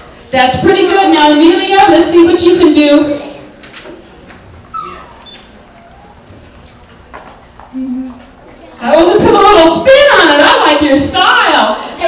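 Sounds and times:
faint audience murmur: 0.0 - 1.2, 1.8 - 12.0.

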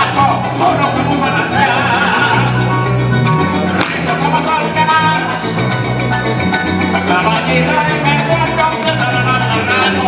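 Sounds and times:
harp playing: 0.0 - 10.0
steady bass line: 0.0 - 10.0.

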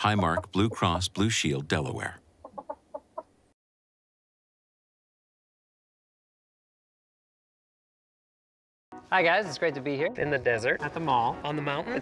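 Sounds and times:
hen clucking: 0.0 - 0.8, 2.4 - 3.4.

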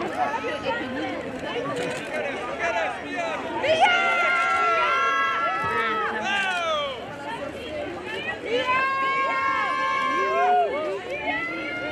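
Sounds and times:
people shouting calls outdoors: 2.7 - 7.5, 8.2 - 11.9.

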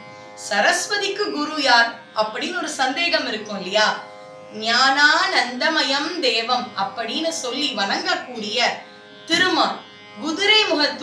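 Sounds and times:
woman speaking: 0.4 - 11.0.

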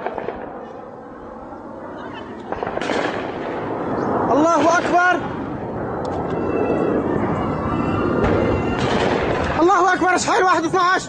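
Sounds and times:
sharp cracks: 0.0 - 0.5, 2.4 - 3.6, 4.3 - 5.4, 8.2 - 9.7
jet roar overhead: 0.0 - 11.0.

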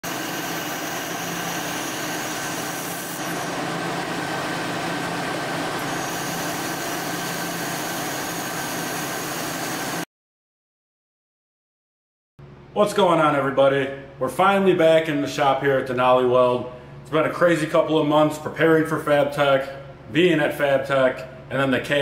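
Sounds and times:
laser welder hissing: 0.0 - 10.0
machine hum: 0.0 - 10.0.

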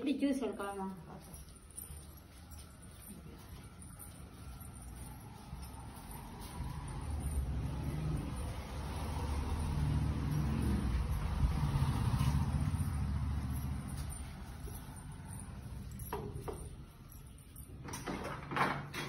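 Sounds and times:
motor vehicle engine rumble: 1.5 - 17.9.

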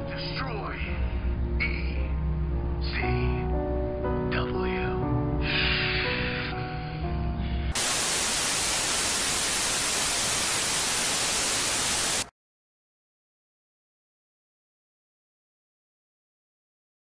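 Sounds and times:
background music with sustained chords: 0.0 - 7.8
tv static hiss: 7.8 - 12.3.

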